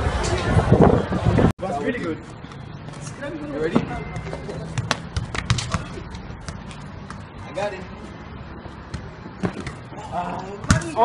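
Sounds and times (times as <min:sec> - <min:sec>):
low outdoor background noise: 0:00.0 - 0:11.0
football being kicked: 0:04.8 - 0:06.6.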